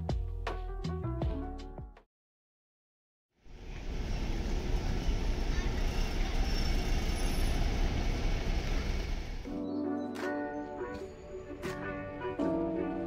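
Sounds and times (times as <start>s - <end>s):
bus driving past: 3.5s - 9.5s
traffic rumble: 3.5s - 9.5s.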